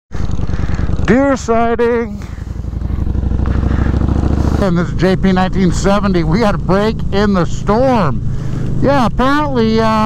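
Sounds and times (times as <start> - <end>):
motorcycle engine riding along: 0.1 - 10.0.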